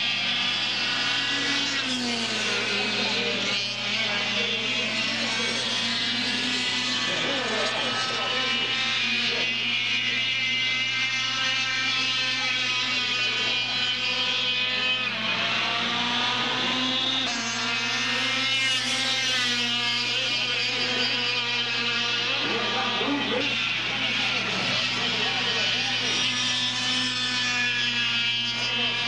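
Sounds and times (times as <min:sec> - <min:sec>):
kart engines revving: 0:00.0 - 0:29.0.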